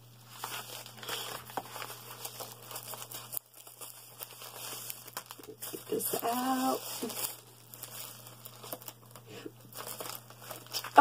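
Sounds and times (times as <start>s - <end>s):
packaging crinkling and rustling: 0.1s - 11.0s.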